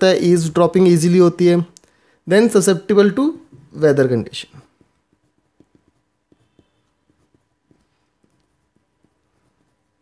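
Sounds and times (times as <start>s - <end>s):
pen writing on paper: 4.6s - 10.0s.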